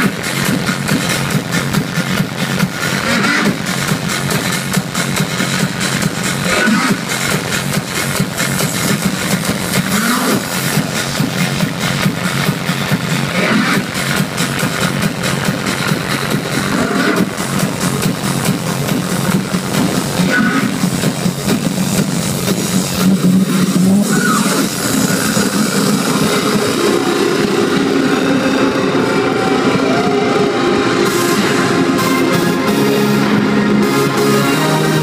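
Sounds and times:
electronic dance music: 0.0 - 35.0.

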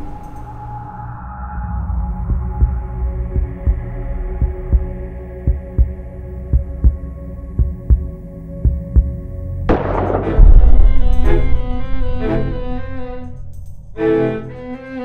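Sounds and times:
low drone: 0.0 - 15.0
heartbeat thumps: 2.2 - 11.6
loud hit: 9.7 - 11.9.

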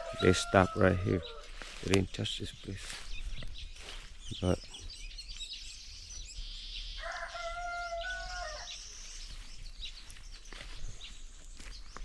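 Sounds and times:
rooster crowing: 0.0 - 1.5, 7.0 - 8.7
small birds chirping: 0.0 - 12.0.

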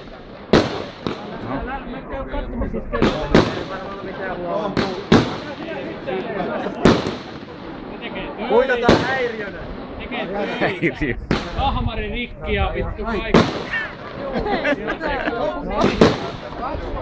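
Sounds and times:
firework shells bursting: 0.0 - 1.4, 3.0 - 8.1.

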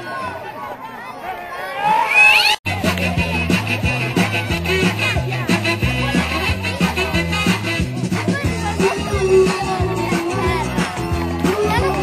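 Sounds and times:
music with steady beat: 2.7 - 12.0.

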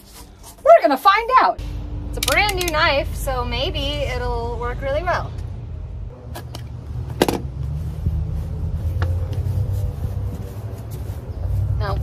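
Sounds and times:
steady low rumble: 1.6 - 12.0.

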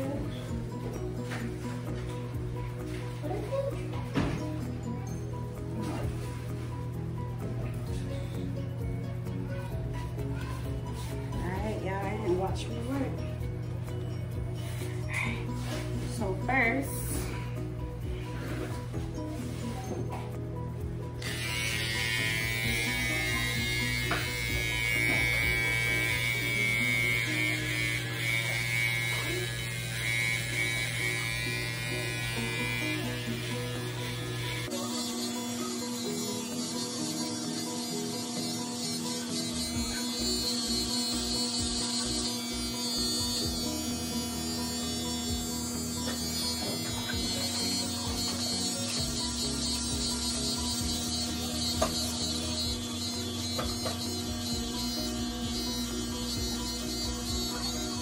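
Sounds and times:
music playing: 0.0 - 58.0
electric hair clippers buzzing: 21.2 - 58.0.

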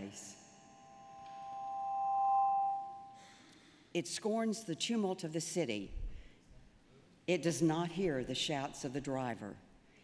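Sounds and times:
ringing two-pitch tone: 0.0 - 3.4.

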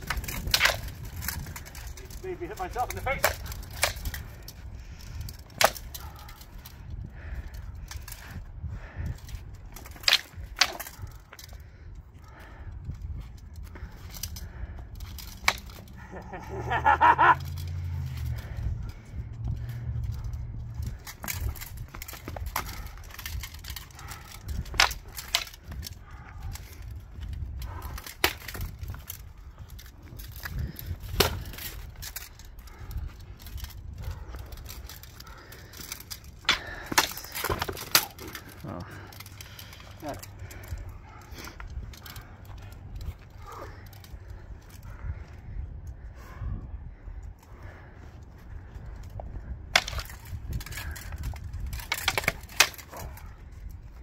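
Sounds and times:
wind rumble on microphone: 0.0 - 54.0
swords clashing: 5.6 - 6.0, 15.2 - 16.3, 35.7 - 38.4, 49.8 - 50.2, 51.8 - 53.0.

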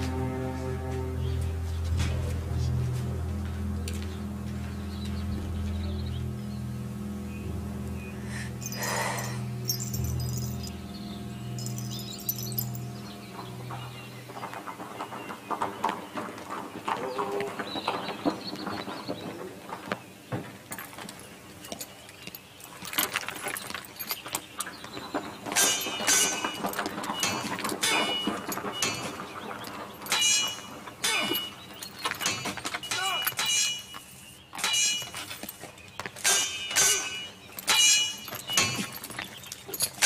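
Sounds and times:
background music: 0.0 - 14.9
metallic clinks and jingles: 8.5 - 14.8, 20.7 - 40.0.

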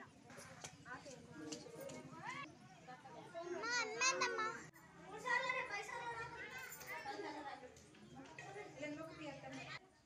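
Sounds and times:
women and children talking: 0.0 - 10.0.

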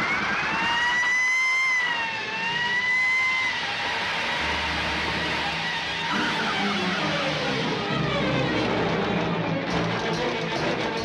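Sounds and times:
police siren wailing: 0.0 - 9.6.

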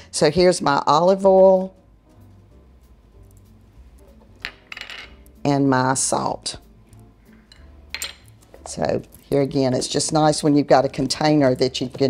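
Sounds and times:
faint background music: 0.0 - 12.0
glass bowl clinking on hard surface: 4.4 - 5.2, 7.5 - 8.3.

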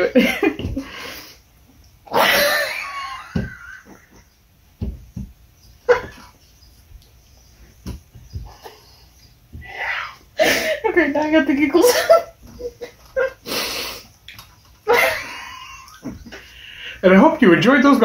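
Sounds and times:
people laughing uncontrollably: 0.0 - 1.0, 2.1 - 4.4, 5.9 - 6.4, 14.8 - 16.7
high-pitched squealing laugh: 2.1 - 4.4, 5.8 - 6.4, 14.8 - 16.6
stifled giggles and breaths: 8.3 - 9.7, 14.8 - 17.0.

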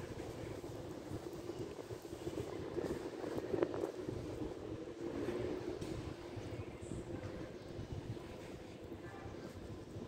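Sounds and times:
engine-like mechanical hum: 0.0 - 10.0.

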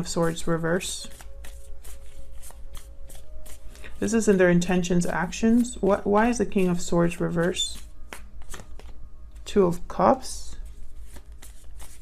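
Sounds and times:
cards shuffled by hand: 0.2 - 4.4, 5.2 - 9.9, 10.6 - 12.0.

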